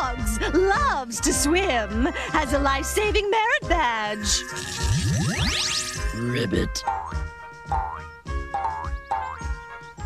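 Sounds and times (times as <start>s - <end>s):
light music: 0.0s - 10.0s
cartoon boing effects: 4.3s - 6.2s.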